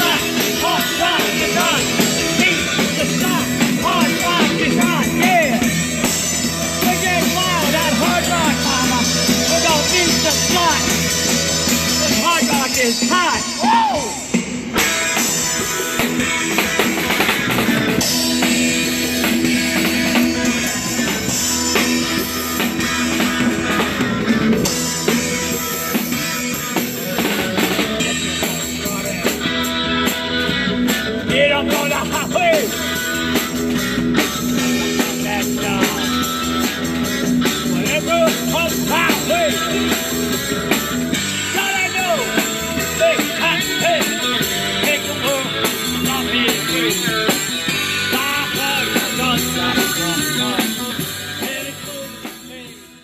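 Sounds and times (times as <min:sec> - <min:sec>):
rock music with drums and guitar: 0:00.0 - 0:53.0.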